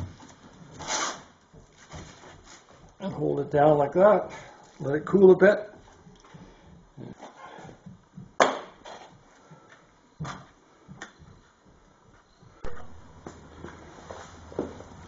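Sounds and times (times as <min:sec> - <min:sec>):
steady low hum: 0:09.1 - 0:15.0.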